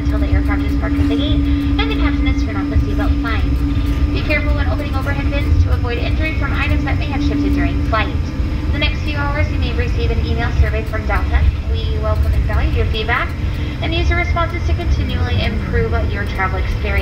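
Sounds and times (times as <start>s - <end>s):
airplane cabin rumble: 0.0s - 17.0s
person talking: 0.0s - 17.0s
steady hum: 0.0s - 17.0s.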